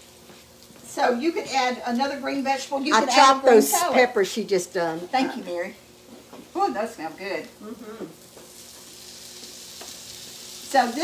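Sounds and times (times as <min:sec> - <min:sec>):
peppers sizzling in oil: 0:00.0 - 0:11.0.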